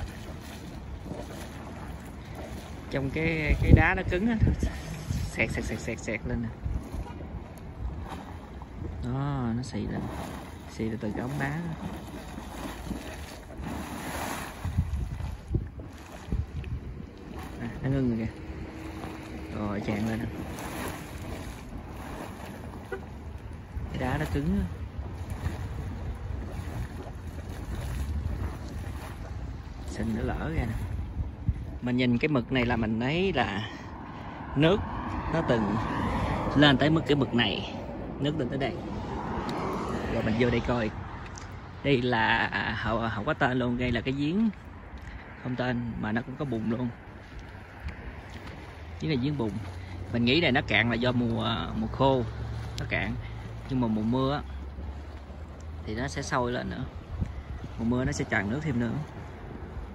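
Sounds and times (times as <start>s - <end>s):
wind thumps on microphone: 0.0s - 9.1s, 11.4s - 41.8s
mud spurting and splashing: 0.0s - 59.9s.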